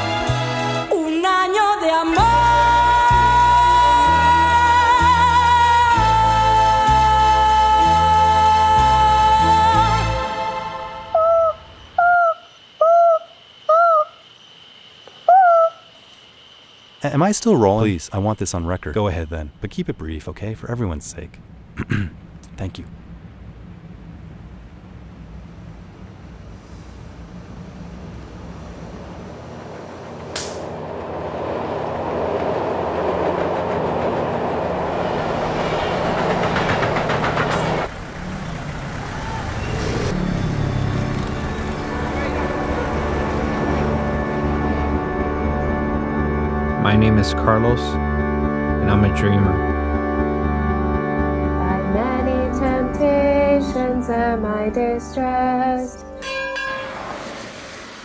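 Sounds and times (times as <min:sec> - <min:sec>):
organ music: 0:00.0 - 0:01.0, 0:01.9 - 0:11.9, 0:39.6 - 0:57.1
owl hooting: 0:11.1 - 0:14.4, 0:15.0 - 0:16.2
low steady hum: 0:17.5 - 0:33.0
loud rushing rumble: 0:21.2 - 0:46.8
sharp click: 0:30.3 - 0:30.7.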